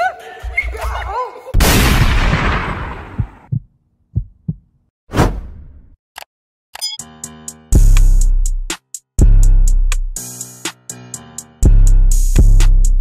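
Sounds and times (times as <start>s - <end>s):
loud boom-like hit: 1.6s - 3.4s
low thumps: 1.6s - 4.7s.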